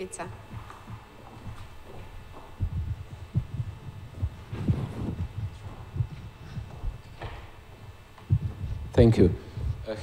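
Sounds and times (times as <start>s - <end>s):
steady low hum: 0.0s - 10.0s
microphone handling thuds: 0.2s - 10.0s.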